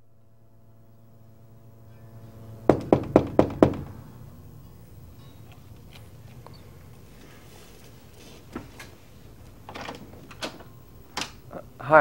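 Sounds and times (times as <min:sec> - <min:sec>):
faint steady hum: 0:00.0 - 0:12.0
knocking on wooden door: 0:02.7 - 0:04.0.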